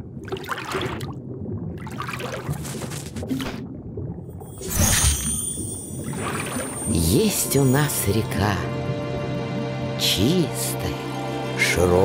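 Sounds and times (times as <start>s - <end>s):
water gurgling and swishing: 0.0s - 12.0s.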